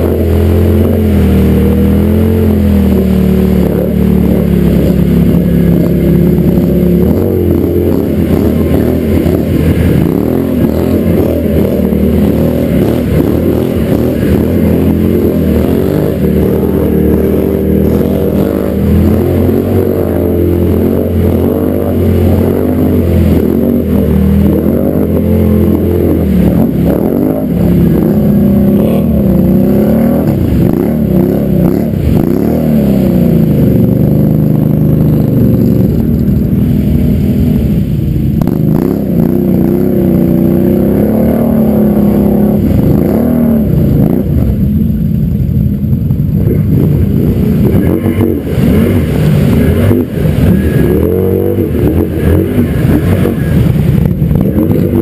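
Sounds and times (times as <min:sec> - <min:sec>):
atv engine revving in mud: 0:00.0 - 0:55.0.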